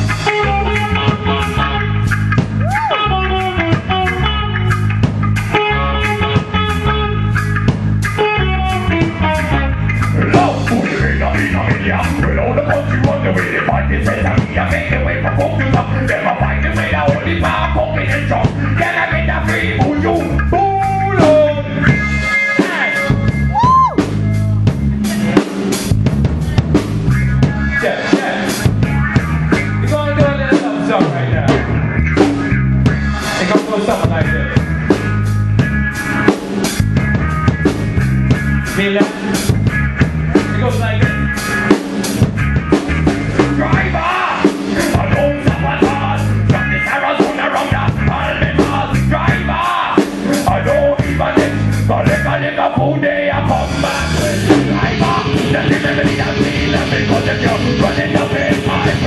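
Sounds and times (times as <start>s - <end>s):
drum kit beat: 0.0s - 59.0s
electric guitars: 0.0s - 59.0s.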